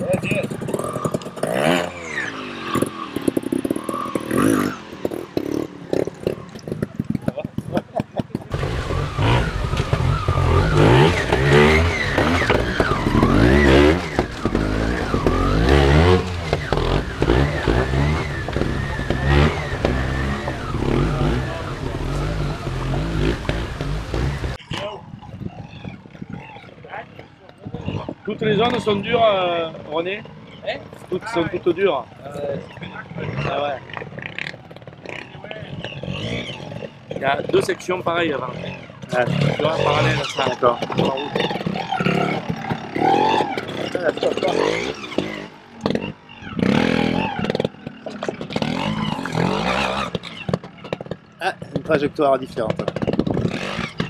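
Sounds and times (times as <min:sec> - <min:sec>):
people talking: 0:00.0 - 0:01.1, 0:06.8 - 0:08.5, 0:18.7 - 0:23.6, 0:24.6 - 0:25.1, 0:26.8 - 0:34.0, 0:35.1 - 0:35.8, 0:37.1 - 0:45.5, 0:51.4 - 0:53.0
motorcycle engine revving: 0:00.0 - 0:54.0.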